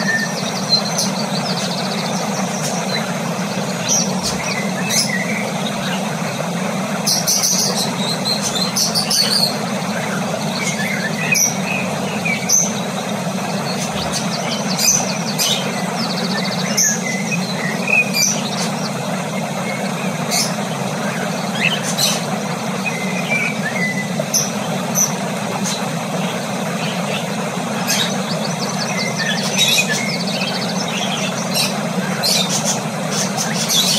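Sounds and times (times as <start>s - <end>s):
steady low hum: 0.0s - 33.9s.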